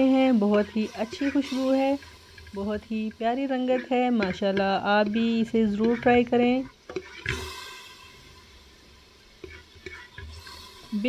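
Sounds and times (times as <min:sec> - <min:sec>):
spatula scraping a pot: 0:00.0 - 0:08.1, 0:09.4 - 0:11.0.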